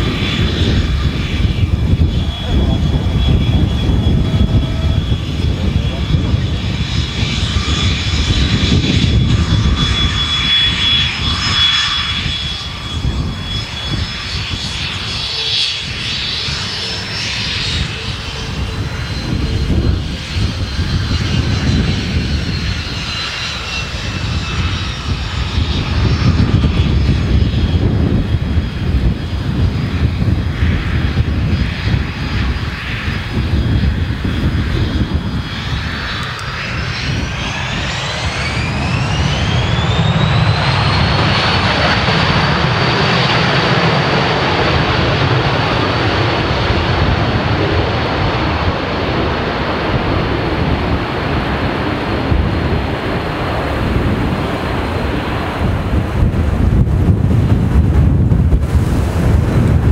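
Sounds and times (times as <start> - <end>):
jet engines whining: 0.0 - 59.9.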